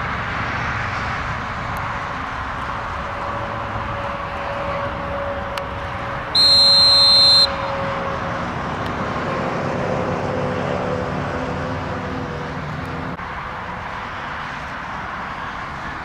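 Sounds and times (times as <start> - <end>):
field and sideline noise: 0.0 - 8.2
referee's whistle blast: 6.4 - 7.7.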